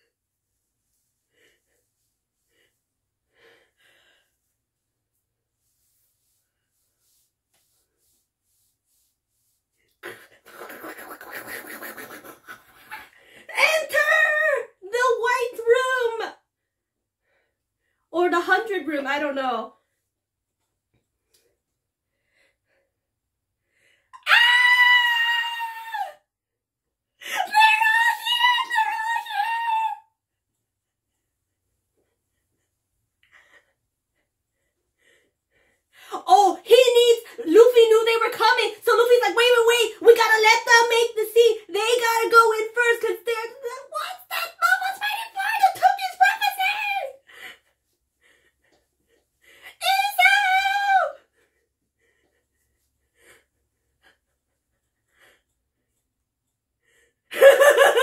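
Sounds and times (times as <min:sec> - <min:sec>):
woman screaming: 0:24.2 - 0:26.2, 0:27.4 - 0:30.0, 0:49.8 - 0:51.2.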